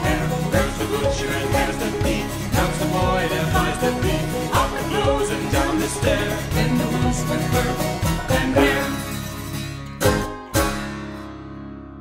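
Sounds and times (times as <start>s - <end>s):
folk band playing: 0.0s - 11.4s.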